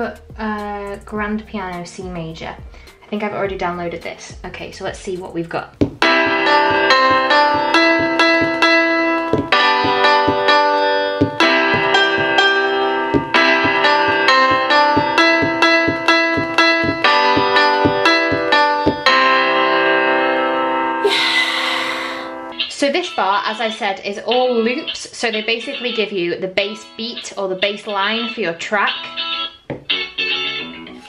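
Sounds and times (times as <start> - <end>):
piano notes and chords: 5.8 - 22.8.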